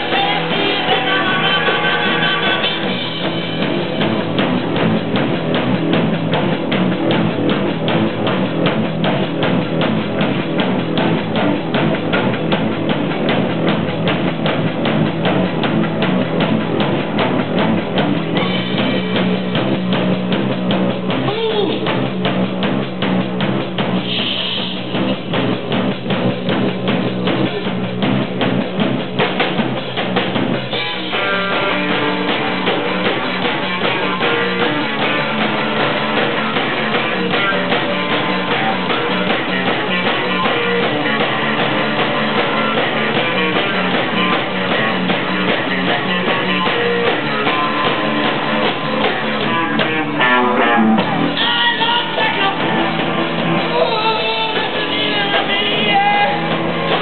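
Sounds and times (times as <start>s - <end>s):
drum kit beat: 0.0s - 57.0s
electric bass: 0.0s - 57.0s
electric guitar: 0.0s - 57.0s
punk rock band playing: 0.0s - 57.0s.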